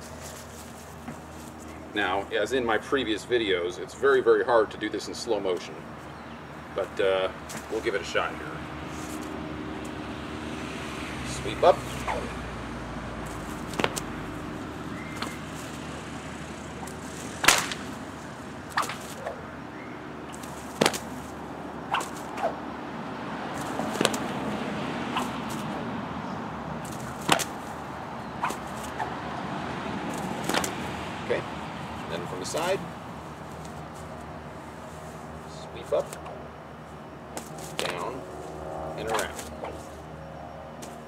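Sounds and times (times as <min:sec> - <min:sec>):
bullwhip cracking: 0:13.2 - 0:14.4, 0:15.0 - 0:15.8, 0:16.8 - 0:19.4, 0:20.3 - 0:22.6, 0:23.6 - 0:24.3, 0:25.1 - 0:25.8, 0:26.8 - 0:27.7, 0:28.4 - 0:29.1, 0:30.1 - 0:30.9.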